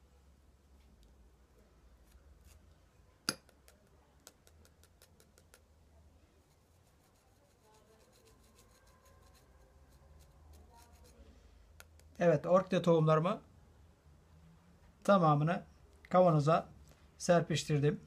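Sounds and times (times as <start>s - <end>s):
seed pod tapped over glass jar: 3.3s - 5.7s.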